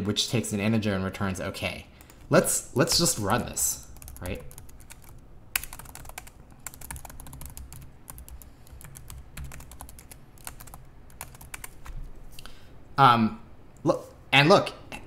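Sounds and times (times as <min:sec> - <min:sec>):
typing on computer keyboard: 0:04.0 - 0:12.0.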